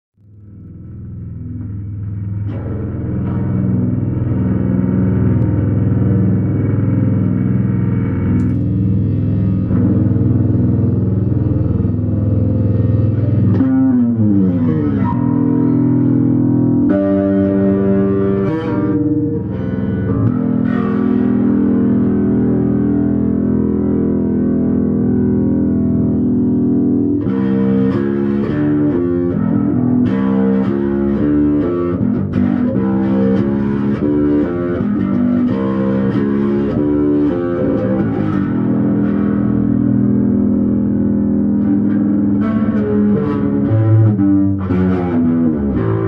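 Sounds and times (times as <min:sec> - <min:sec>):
bass notes gliding downward: 0:00.2 - 0:46.0
electric bass drones: 0:00.2 - 0:46.0.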